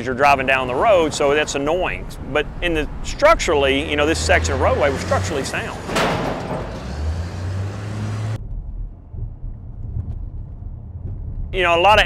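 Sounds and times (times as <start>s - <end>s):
car driving heard from cabin: 0.0s - 8.4s
diesel engine of loader driving: 0.0s - 8.4s.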